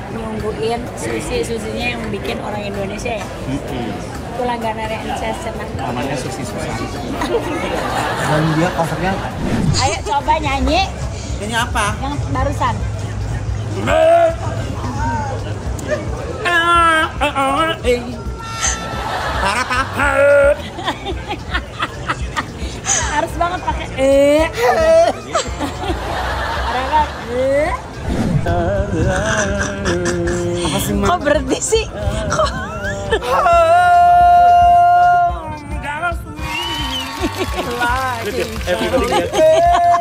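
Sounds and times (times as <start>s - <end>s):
man singing: 28.4s - 31.4s.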